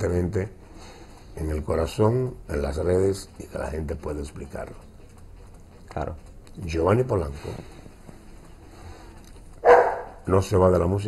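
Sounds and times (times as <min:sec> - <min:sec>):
dog barking: 0:09.6 - 0:10.2.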